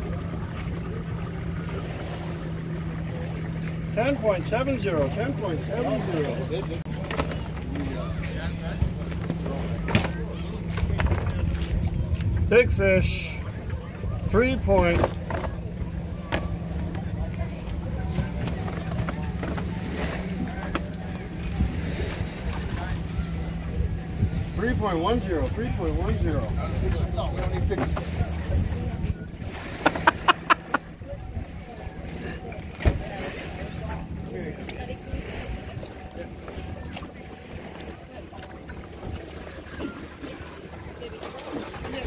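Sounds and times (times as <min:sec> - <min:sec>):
faint voices: 0:00.0 - 0:42.0
low motor hum: 0:00.0 - 0:42.0
wind rumble on microphone: 0:07.5 - 0:40.6
faint background voices: 0:15.0 - 0:24.7.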